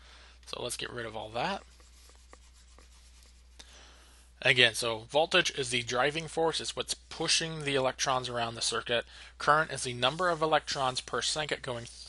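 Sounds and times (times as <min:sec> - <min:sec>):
low electrical hum: 0:00.0 - 0:12.0
stylus scratching on tablet: 0:01.0 - 0:03.6, 0:09.8 - 0:12.0.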